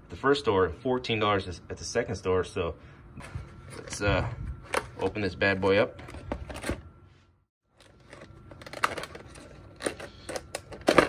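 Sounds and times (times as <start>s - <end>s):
plastic packaging crinkling: 7.7s - 11.0s.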